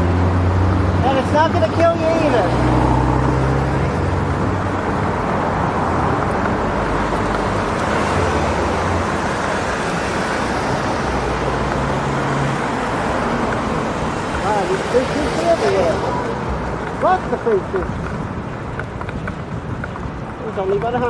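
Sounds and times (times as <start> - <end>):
cars passing: 0.0 - 21.0
road traffic noise: 0.0 - 21.0.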